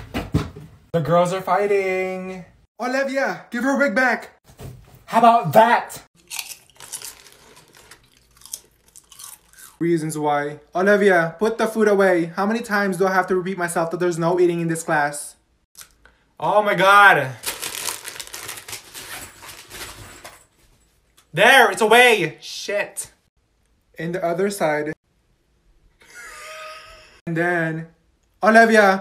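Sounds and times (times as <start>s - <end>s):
crunching potato chips: 6.2s - 9.8s, 17.4s - 19.7s
plastic bag crinkling: 6.5s - 9.6s, 17.4s - 20.4s.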